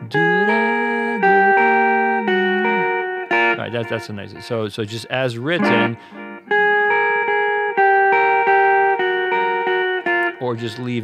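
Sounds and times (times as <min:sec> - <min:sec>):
electric guitar chords: 0:00.0 - 0:11.0.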